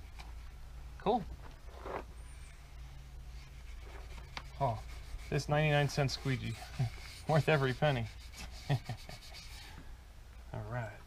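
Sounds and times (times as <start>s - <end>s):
plastic squeegee scratching tape: 3.4s - 9.7s
man laughing: 6.5s - 9.6s.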